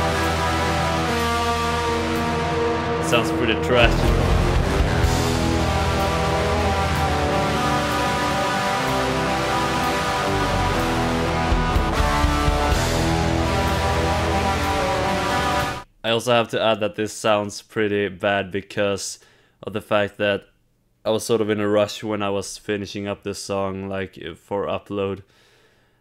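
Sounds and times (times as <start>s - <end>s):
heavy metal song: 0.0s - 15.8s.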